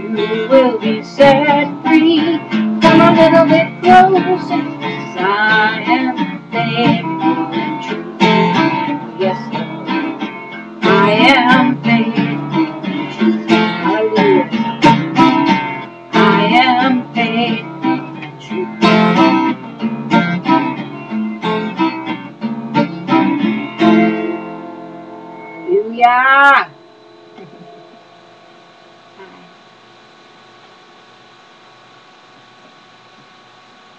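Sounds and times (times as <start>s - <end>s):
woman singing: 0.0s - 15.5s, 16.1s - 19.1s
acoustic guitar strumming: 0.0s - 29.9s.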